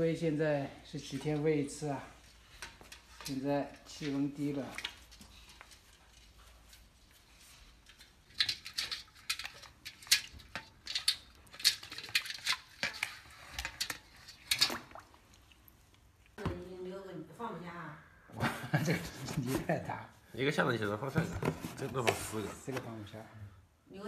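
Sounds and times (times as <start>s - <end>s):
turtle claws scraping on metal: 8.0s - 14.8s.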